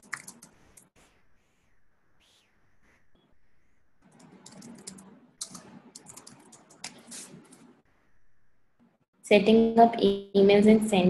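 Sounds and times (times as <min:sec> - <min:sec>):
computer keyboard typing: 0:00.0 - 0:00.9, 0:04.0 - 0:07.7.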